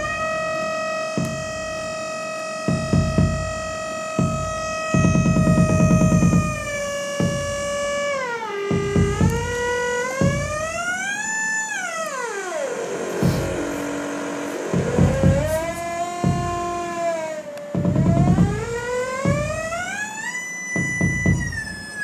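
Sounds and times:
irregular low thumps: 0.0s - 11.1s, 13.2s - 14.0s, 14.7s - 17.0s, 17.8s - 20.0s, 20.8s - 21.9s
synthesizer oscillator screaming: 0.0s - 22.0s.

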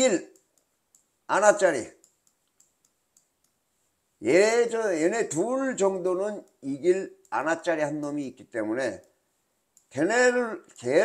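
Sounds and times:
faint pen clicks: 2.0s - 3.6s.

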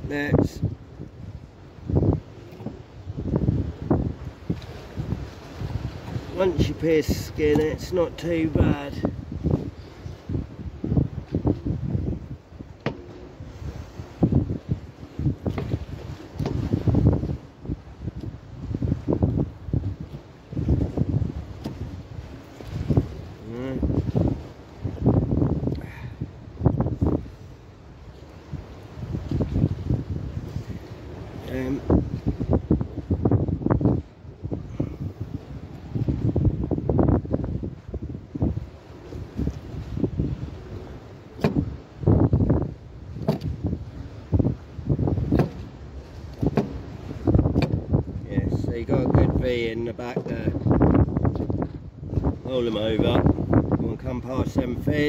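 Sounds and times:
wind buffeting microphone: 0.0s - 55.0s
sharp knocks: 41.4s - 41.6s, 47.6s - 47.8s.

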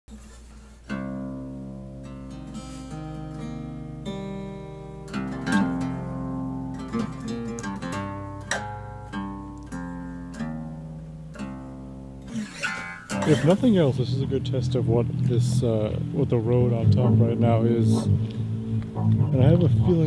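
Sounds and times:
acoustic guitar music: 0.1s - 20.0s.

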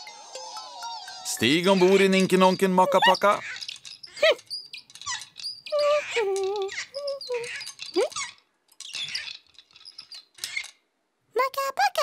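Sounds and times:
cartoon squeaks: 0.8s - 10.7s.

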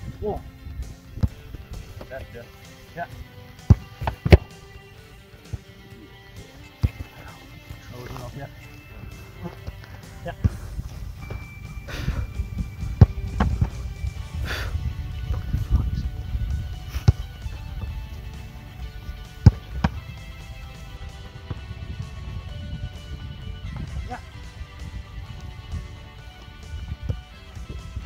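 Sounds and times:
football kicked thumps: 3.6s - 4.5s, 6.7s - 7.8s, 9.5s - 13.9s, 18.9s - 20.2s
wind rumble on microphone: 10.5s - 28.0s.

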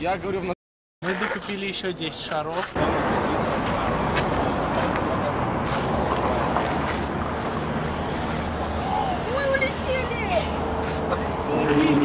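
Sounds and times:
passing cars rumble: 2.8s - 12.0s.

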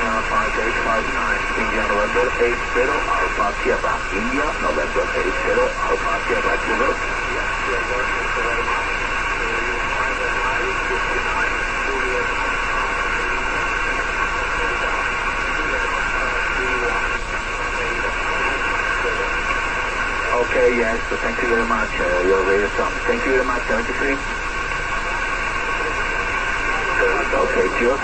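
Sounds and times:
radio receiver hiss: 0.0s - 28.0s
weak broken radio voice: 0.0s - 28.0s.

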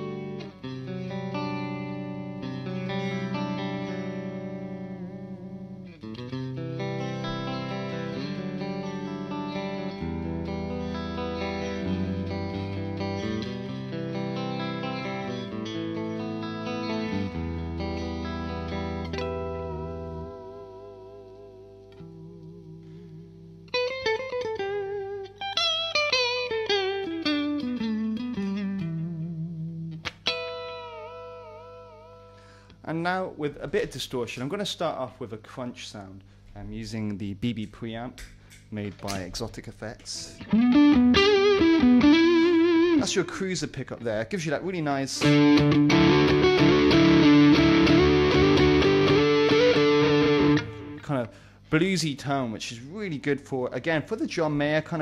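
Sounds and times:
clean electric guitar rhythm: 0.0s - 32.6s, 40.0s - 43.6s, 44.4s - 51.6s
guitar lead line with vibrato: 0.0s - 32.7s, 40.2s - 43.3s, 45.2s - 51.6s.

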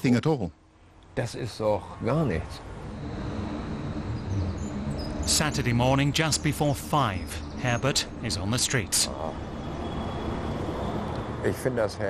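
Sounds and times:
low hum of city and harbour: 0.0s - 12.0s
faint bird chirps: 2.5s - 11.1s.

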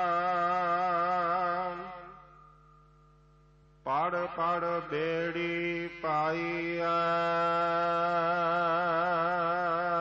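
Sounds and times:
man singing devotional verse: 0.0s - 2.2s, 3.8s - 10.0s.

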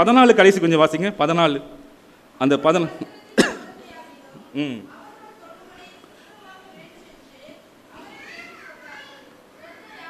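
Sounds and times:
man coughing into microphone: 3.4s - 3.8s.

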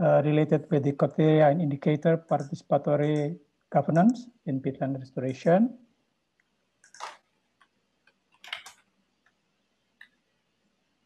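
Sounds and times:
computer mouse clicks: 6.8s - 7.2s.

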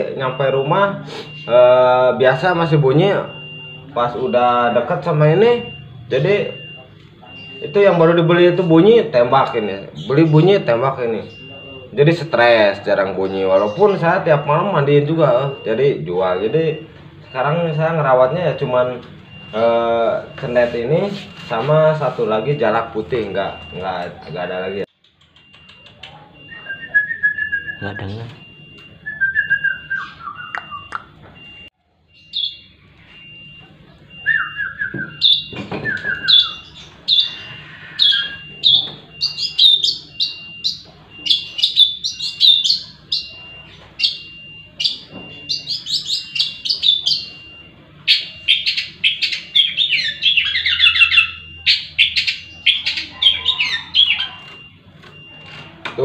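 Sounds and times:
bird chirping rapidly: 26.4s - 55.4s.

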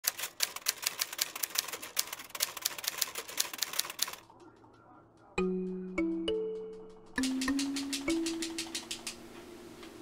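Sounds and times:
typewriter keys clacking: 0.0s - 4.8s, 7.2s - 9.2s.

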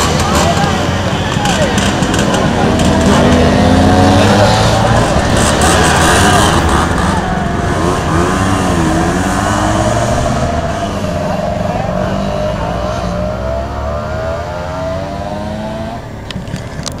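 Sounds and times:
scooter engines labouring uphill: 0.0s - 17.0s.

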